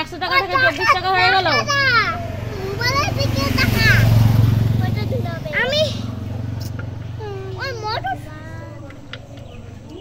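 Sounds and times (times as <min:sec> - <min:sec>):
motorcycle engine passing: 0:00.0 - 0:10.0
child chattering: 0:00.5 - 0:04.2, 0:04.8 - 0:10.0.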